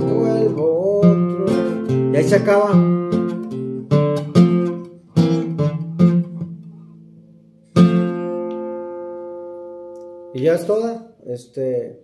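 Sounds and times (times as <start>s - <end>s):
classical guitar chords: 0.0s - 10.7s.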